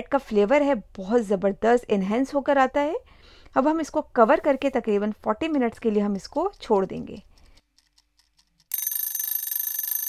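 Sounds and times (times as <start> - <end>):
alarm clock ringing: 8.7 - 10.0.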